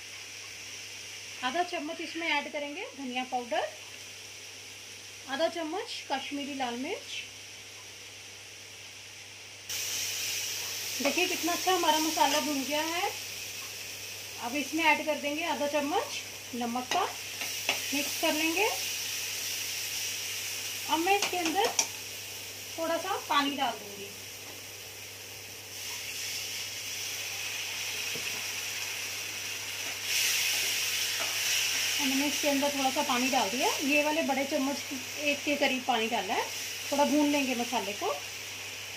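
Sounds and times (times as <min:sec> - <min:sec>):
spices sizzling in hot oil: 0:00.0 - 0:38.9.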